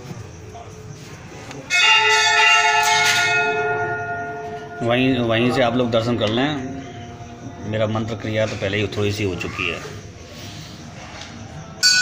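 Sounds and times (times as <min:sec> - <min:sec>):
temple bell ringing: 0:01.7 - 0:06.9, 0:11.8 - 0:12.0.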